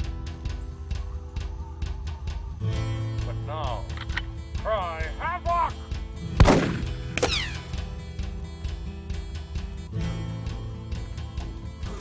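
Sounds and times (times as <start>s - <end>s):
background music: 0.0s - 12.0s
bullet ricochet whine: 6.4s - 7.7s
rifle shot with ringing tail: 6.4s - 7.7s.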